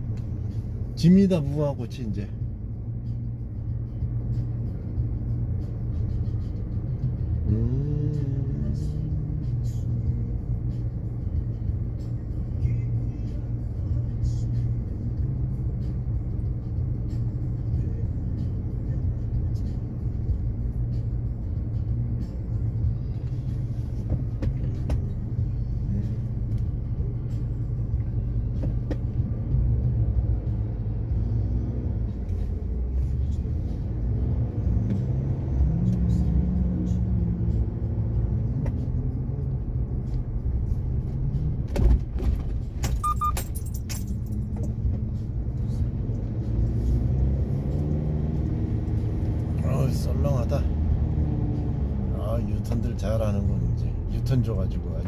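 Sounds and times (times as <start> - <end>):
car engine and tyres rumbling: 0.0 - 55.0
short high beep: 43.0 - 43.4.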